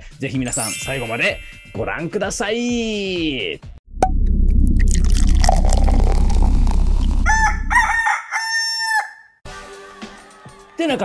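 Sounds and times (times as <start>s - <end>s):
loud low rumble: 3.9s - 7.8s
rooster crowing: 7.2s - 9.4s.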